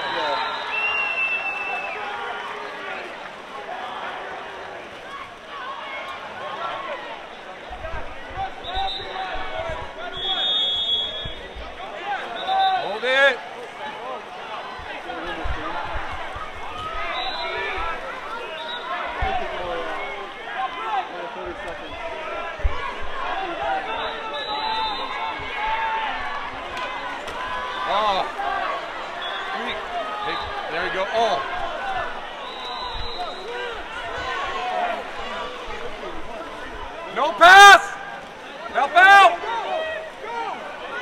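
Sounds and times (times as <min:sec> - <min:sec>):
crowd chatter and calls: 0:00.0 - 0:41.0.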